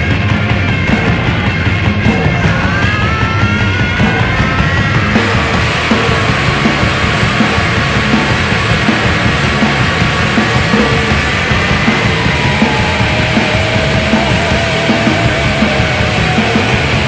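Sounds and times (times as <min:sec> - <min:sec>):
distorted guitars: 0:00.0 - 0:17.0
drum hits: 0:00.0 - 0:17.0.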